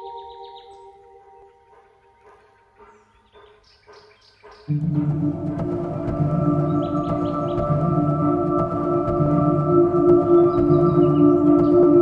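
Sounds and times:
soft ambient music: 0.0s - 12.0s.

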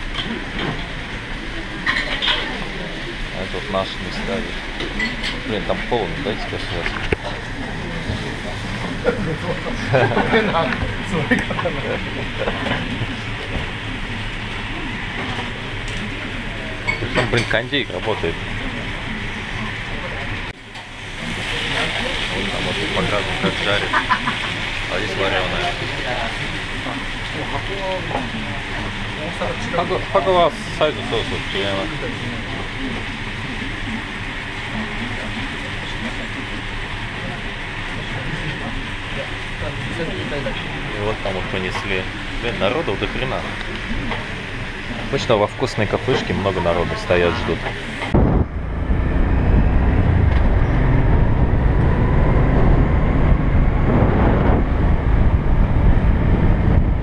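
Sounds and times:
people talking: 0.0s - 20.5s, 21.2s - 48.5s
food frying in a pan: 0.0s - 48.2s
air conditioner running: 0.0s - 57.0s
faint voices: 0.0s - 57.0s.

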